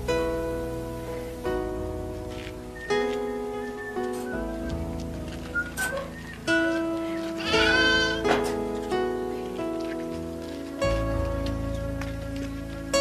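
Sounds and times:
music of sustained notes: 0.0 - 13.0
goat bleating: 7.4 - 8.4.

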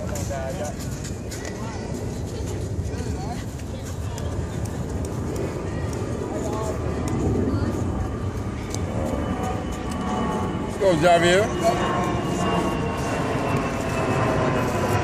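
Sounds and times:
distant indistinct voices: 0.0 - 15.0
steady low rumble: 0.0 - 15.0.

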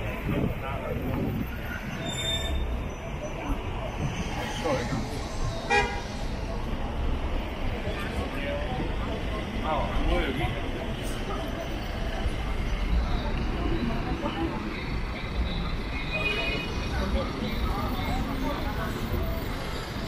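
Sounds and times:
voices of passers-by: 0.0 - 20.0
car horn toot: 5.7 - 6.0.

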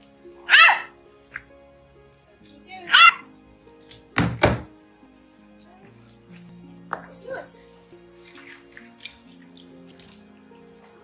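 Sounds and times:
puppy yipping: 0.3 - 1.0, 2.9 - 3.3.

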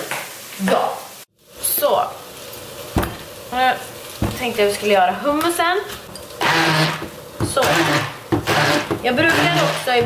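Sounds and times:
immersion blender chopping chickpeas: 6.4 - 10.0.

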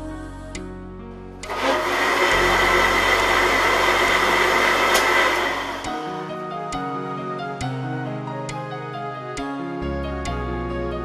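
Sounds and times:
blender whining: 1.4 - 6.1.

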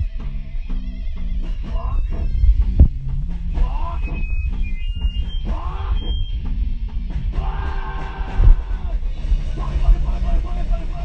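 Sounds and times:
high-pitched squeals: 0.0 - 10.7
electric guitar: 0.0 - 11.0
steady drums: 0.0 - 11.0.

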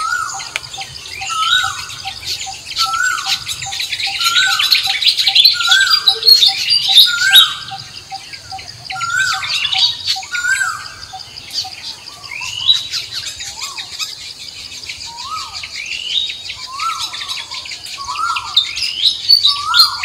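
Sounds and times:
repeating bird call: 0.0 - 11.2
birds chirping and squawking: 0.0 - 20.0.

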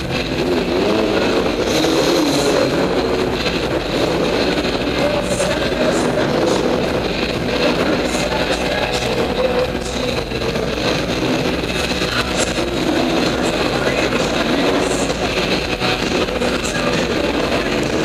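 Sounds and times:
dirt bike engines revving: 0.0 - 18.0.

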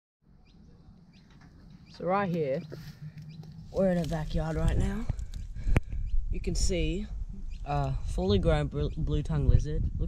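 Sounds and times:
bird chirping: 0.3 - 9.4
low outdoor rumble: 0.3 - 10.0.

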